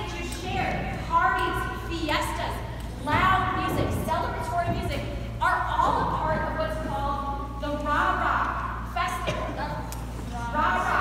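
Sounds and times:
steady low hum: 0.0s - 11.0s
woman speaking in a large hall: 0.0s - 11.0s.

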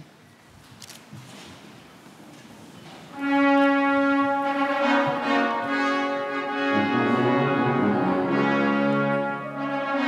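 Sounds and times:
brass music: 3.2s - 10.0s.

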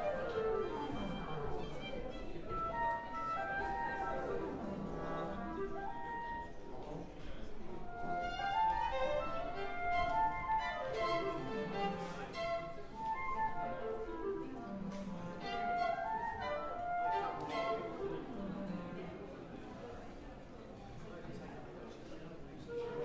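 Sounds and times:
faint chattering voices: 0.0s - 23.0s
orchestral instruments warming up: 7.8s - 18.9s.

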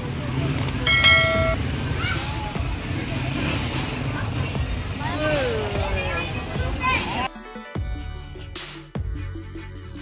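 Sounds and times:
motorcycle and traffic rumble: 0.0s - 5.6s.

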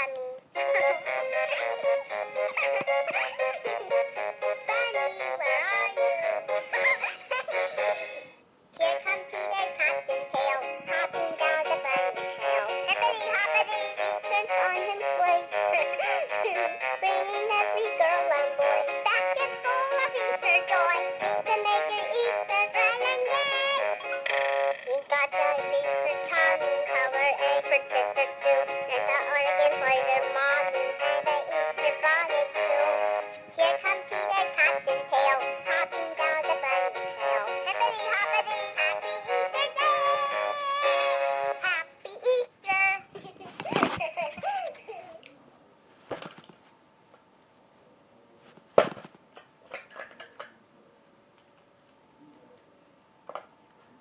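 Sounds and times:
toy playing synthetic singing song: 0.6s - 42.8s.

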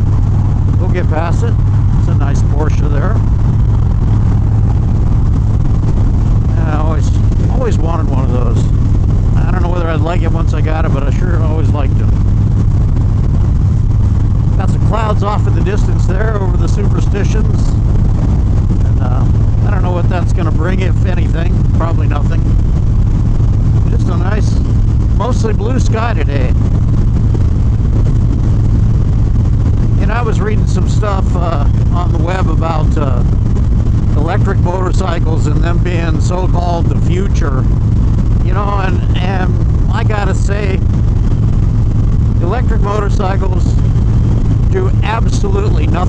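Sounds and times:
motorcycle engine drone: 0.0s - 46.0s
man talking: 0.8s - 3.2s, 6.4s - 8.8s, 9.4s - 12.2s, 14.5s - 17.8s, 18.8s - 22.6s, 23.8s - 26.6s, 30.0s - 33.4s, 34.1s - 37.7s, 38.4s - 40.9s, 42.4s - 43.9s, 44.6s - 46.0s.

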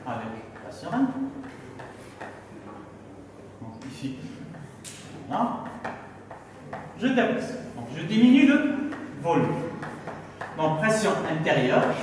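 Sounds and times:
chalk on blackboard: 1.4s - 2.4s, 5.6s - 6.9s, 8.9s - 10.6s
person speaking: 3.6s - 12.0s.

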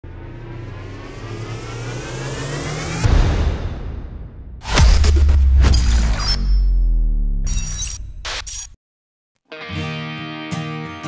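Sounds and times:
whoosh with rising whine: 0.0s - 4.6s
deep boom: 0.0s - 7.4s.

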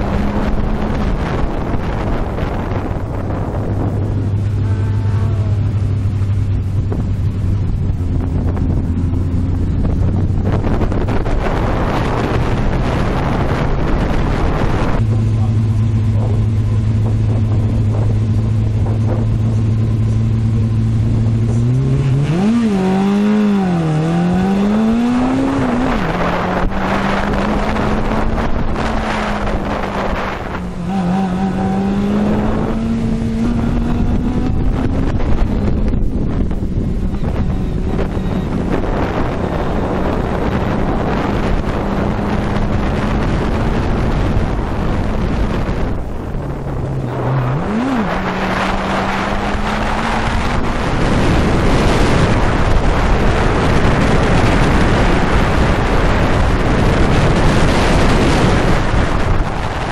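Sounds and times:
car engine revving: 0.0s - 59.9s
wind noise on microphone: 0.0s - 59.9s.

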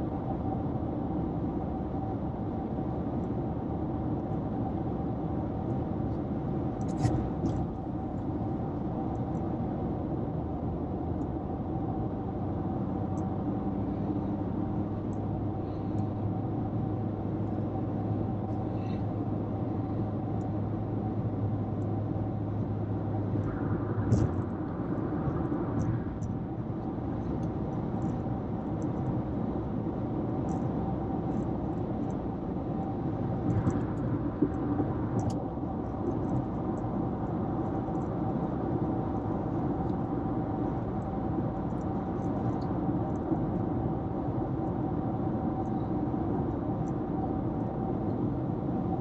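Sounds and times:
car road and engine noise: 0.0s - 49.0s.

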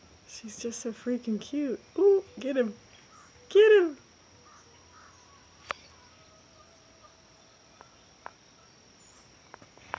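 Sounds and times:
insects trilling: 0.0s - 9.9s.

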